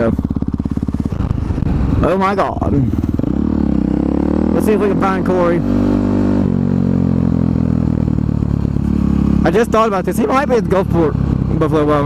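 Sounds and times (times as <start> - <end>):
motorcycle engine at low revs: 0.0 - 12.0.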